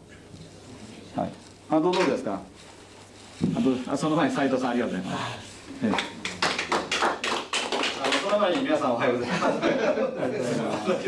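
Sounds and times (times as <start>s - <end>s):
people clapping: 5.8s - 9.0s.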